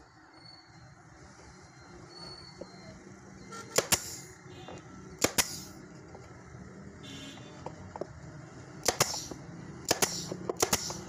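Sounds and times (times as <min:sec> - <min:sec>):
nail gun firing into plywood: 0:03.8 - 0:04.3, 0:05.2 - 0:05.8, 0:08.8 - 0:11.0.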